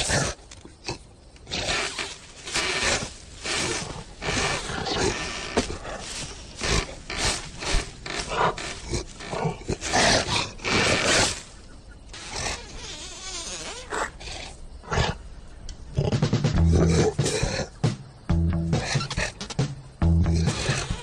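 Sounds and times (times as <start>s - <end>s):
growls and sound effects: 15.9s - 17.8s.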